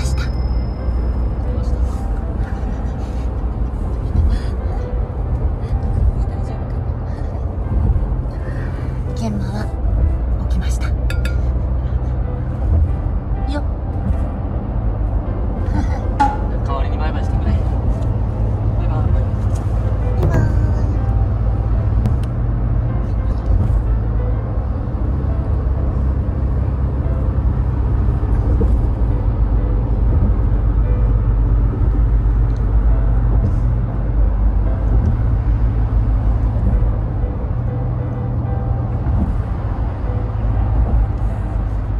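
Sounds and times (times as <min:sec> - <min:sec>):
car interior road rumble: 0:00.0 - 0:41.9.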